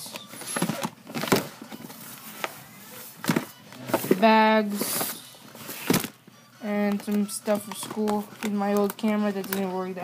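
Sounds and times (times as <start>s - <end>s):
rummaging in a plastic bin: 0.1s - 6.2s.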